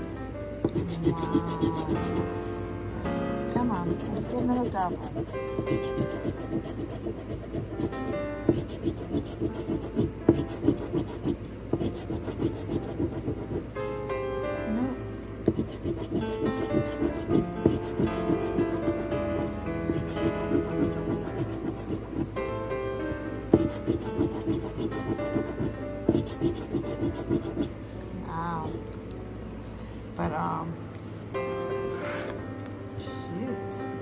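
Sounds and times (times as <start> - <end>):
background music: 0.0 - 34.0
coin scraping scratch ticket: 0.7 - 2.2, 3.6 - 13.6, 23.7 - 27.7.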